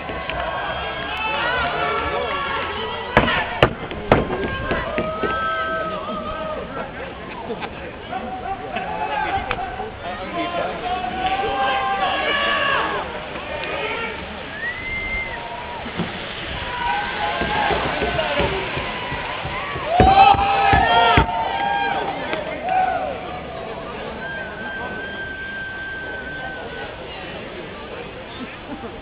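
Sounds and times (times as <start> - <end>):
spectators calling and shouting: 0.0 - 29.0
long held call: 18.9 - 27.4.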